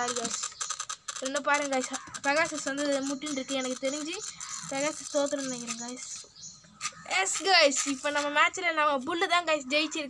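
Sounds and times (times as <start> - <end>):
person talking: 0.0 - 0.6, 1.2 - 6.2, 7.0 - 10.0.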